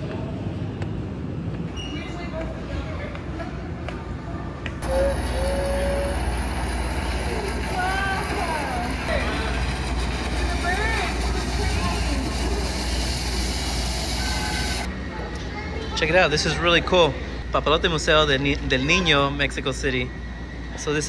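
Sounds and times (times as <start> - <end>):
rumble of busy indoor hall: 0.0 - 21.0.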